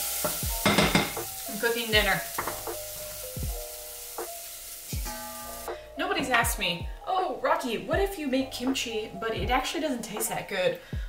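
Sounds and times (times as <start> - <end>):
food sizzling in a frying pan: 0.0 - 5.7
soft background music: 0.0 - 11.0
deep kick drum: 3.4 - 3.6, 6.4 - 7.1, 7.9 - 8.1, 9.4 - 9.7.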